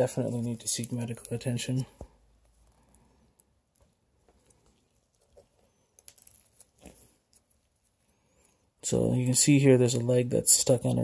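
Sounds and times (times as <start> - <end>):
faint clicks and rustles: 0.0 - 8.8.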